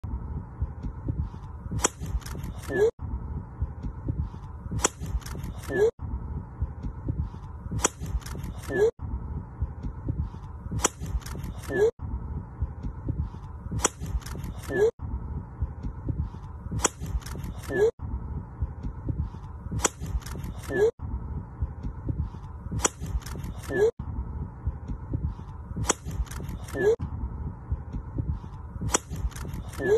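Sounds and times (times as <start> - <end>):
outdoor background noise: 0.0 - 29.9.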